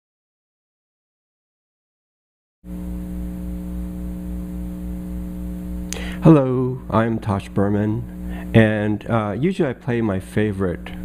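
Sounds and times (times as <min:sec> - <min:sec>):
electrical mains hum: 0:02.7 - 0:11.0.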